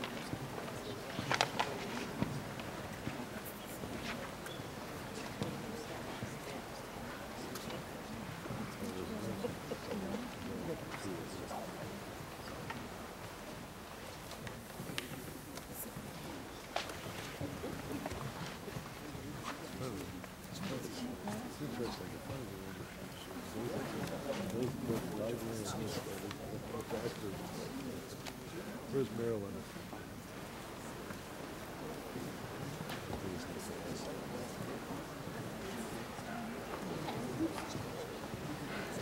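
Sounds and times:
faint clicks and shuffles: 0.0s - 39.0s
murmur of voices: 0.0s - 39.0s
seated crowd noise: 0.0s - 39.0s.

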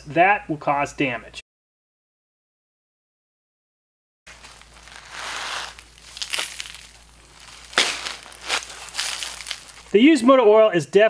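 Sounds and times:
sand pouring onto cardboard: 4.3s - 10.0s
sharp crunchy knocks: 4.3s - 10.0s.

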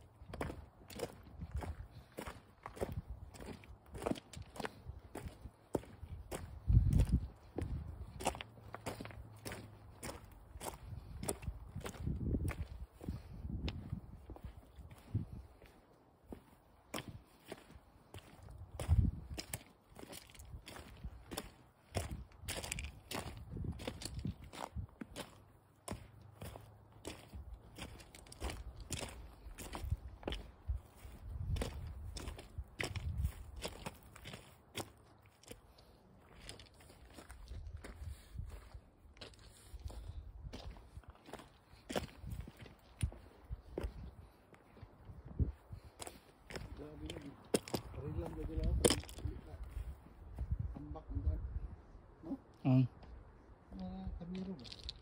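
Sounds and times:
footsteps on gravel: 0.0s - 50.7s, 54.3s - 55.0s.

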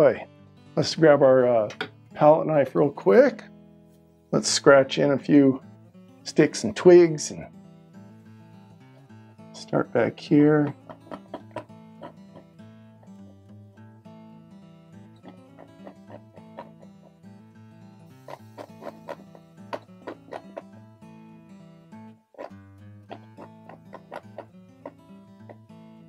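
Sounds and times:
plucked acoustic guitar: 0.0s - 26.0s.

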